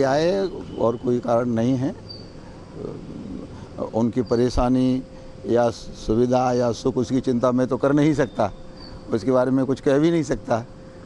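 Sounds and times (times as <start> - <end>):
man speaking: 0.0 - 2.0, 2.8 - 10.7
outdoor noise: 0.0 - 11.0.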